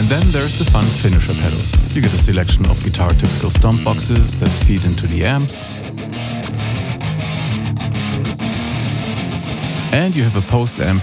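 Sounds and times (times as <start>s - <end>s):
staccato electric guitar riff: 0.0s - 11.0s.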